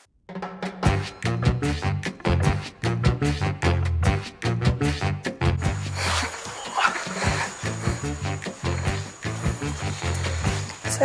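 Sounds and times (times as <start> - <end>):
music with repeating bass line: 0.8 - 6.0
rough noise: 5.6 - 11.0.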